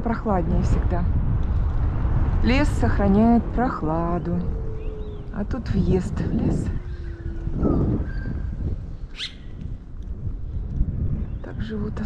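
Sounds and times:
wind and road rumble: 0.0 - 12.0
bird calls: 4.1 - 5.5, 6.7 - 9.6.

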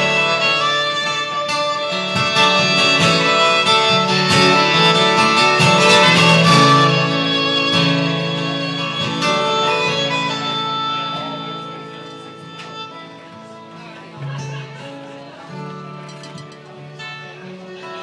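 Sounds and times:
acoustic guitars: 0.0 - 18.0
violin solo: 0.0 - 18.0.

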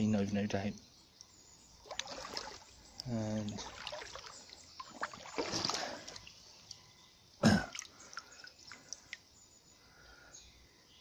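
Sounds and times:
shallow stream trickling: 0.0 - 10.0.

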